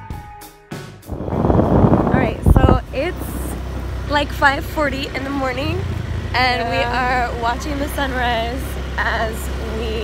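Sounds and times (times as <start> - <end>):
wind buffeting microphone: 1.0 - 6.3
vehicle engine drone: 1.1 - 10.0.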